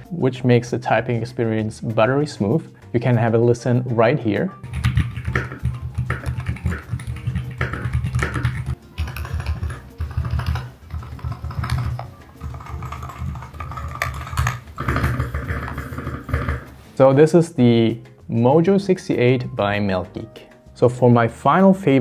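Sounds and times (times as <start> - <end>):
fast typing on mechanical keyboard: 4.6 - 16.6.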